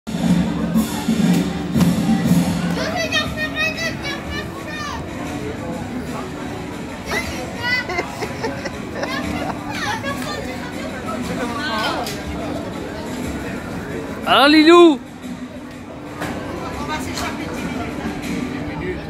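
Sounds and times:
background music: 0.1s - 19.0s
children calling out and chattering: 0.8s - 12.6s.

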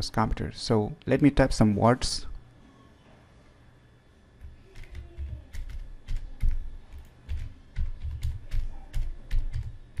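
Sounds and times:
keyboard keystrokes: 4.7s - 10.0s.

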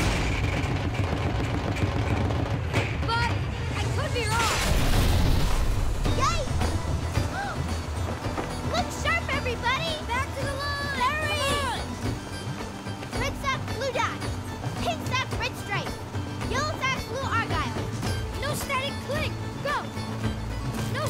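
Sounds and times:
music: 0.0s - 21.0s.

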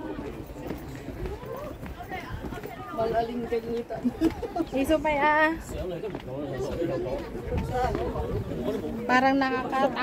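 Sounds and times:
people talking faintly: 0.0s - 10.0s
wind rumble on microphone: 7.1s - 9.0s.

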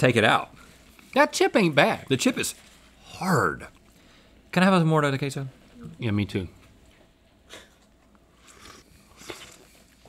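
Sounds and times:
soft mouth smacking: 8.4s - 10.0s.

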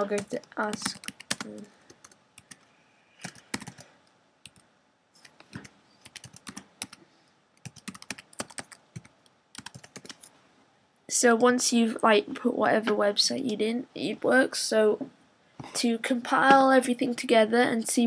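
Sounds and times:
computer keyboard typing: 0.0s - 4.6s, 5.2s - 7.0s, 7.6s - 10.3s.

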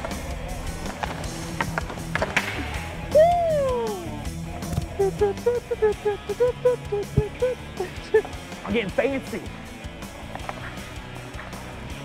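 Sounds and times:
hockey sticks clicking on puck: 0.0s - 2.7s, 10.2s - 12.0s
background music: 0.0s - 12.0s
ice skate blades scraping: 10.1s - 11.9s.

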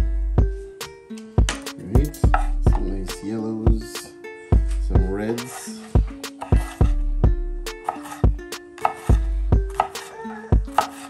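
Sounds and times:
knife knocking on cutting board: 8.8s - 11.0s.

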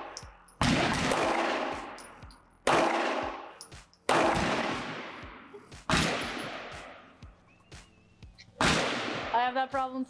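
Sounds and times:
pistol shot echoing: 0.0s - 7.0s, 8.6s - 9.4s.

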